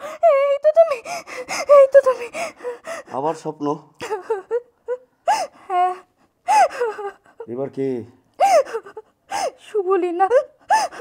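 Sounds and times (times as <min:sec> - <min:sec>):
woman sobbing: 0:00.0 - 0:03.2, 0:04.0 - 0:07.5, 0:08.4 - 0:11.0.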